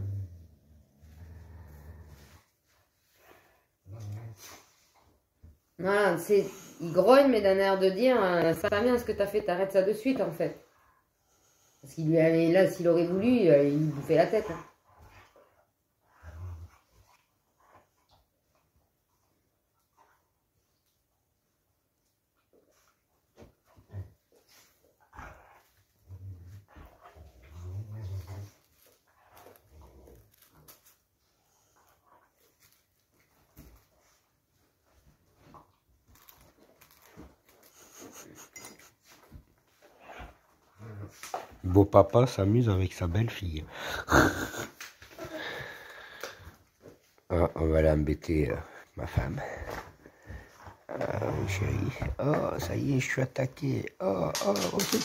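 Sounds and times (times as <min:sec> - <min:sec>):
dog growling low: 0:00.0 - 0:02.4, 0:16.1 - 0:16.9, 0:25.2 - 0:28.6, 0:50.6 - 0:52.5.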